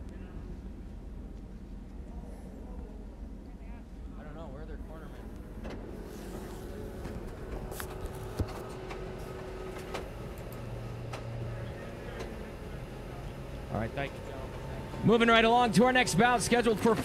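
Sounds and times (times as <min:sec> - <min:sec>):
scattered clicks: 0:09.7 - 0:11.3.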